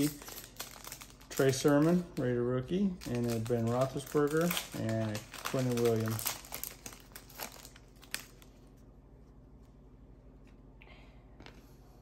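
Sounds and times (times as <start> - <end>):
foil wrapper crinkling: 0.0 - 8.8.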